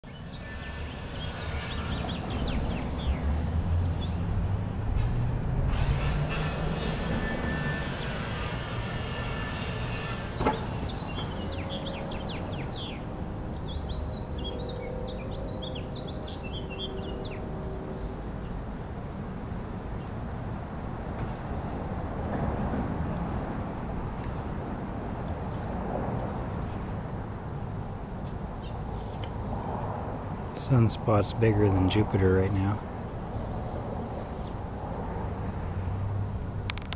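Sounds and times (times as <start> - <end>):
small birds chirping: 10.6 - 17.4.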